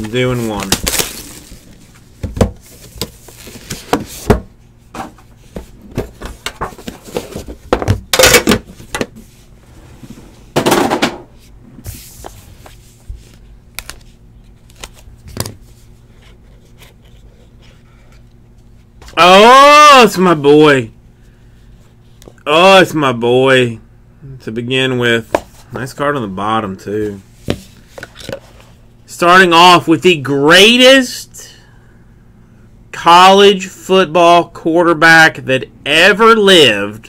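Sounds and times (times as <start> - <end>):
man talking: 0.0 - 0.8.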